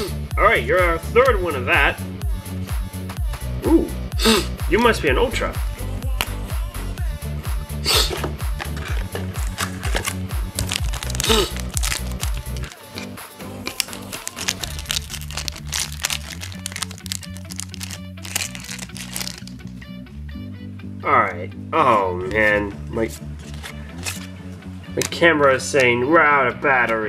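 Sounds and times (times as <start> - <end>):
background music with bass line: 0.0 - 27.0
foil pack crinkling: 8.6 - 19.8, 23.4 - 24.3.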